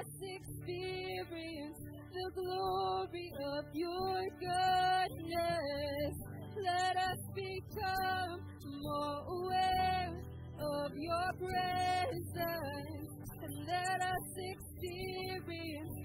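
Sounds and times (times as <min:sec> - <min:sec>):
women singing worship song: 0:00.0 - 0:16.0.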